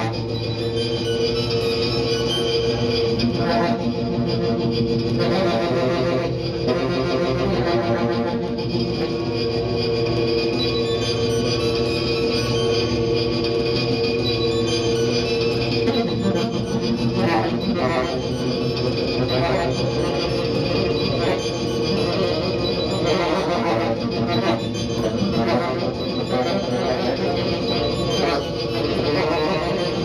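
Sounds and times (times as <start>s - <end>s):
saxophone drone through effects: 0.0s - 30.0s.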